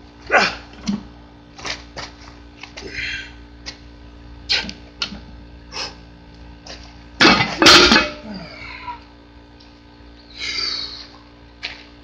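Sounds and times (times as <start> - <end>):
man grunting: 0.3 - 0.7, 8.2 - 9.0
barbell thud and clank: 7.2 - 8.3.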